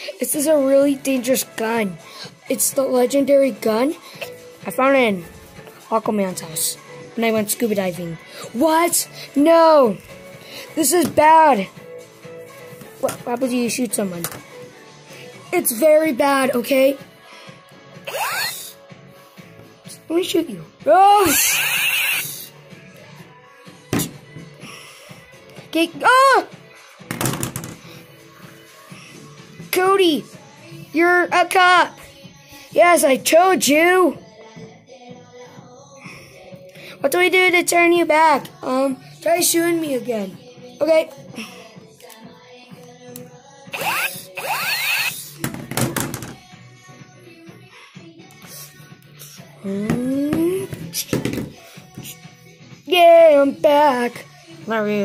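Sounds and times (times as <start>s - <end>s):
background music: 0.0s - 55.0s.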